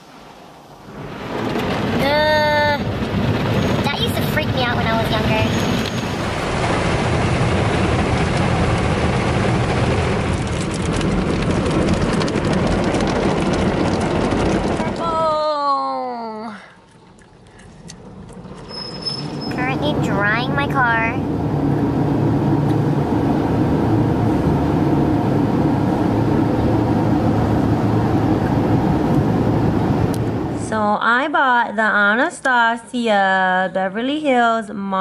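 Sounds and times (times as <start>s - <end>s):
car wash water spray: 2.8s - 14.8s.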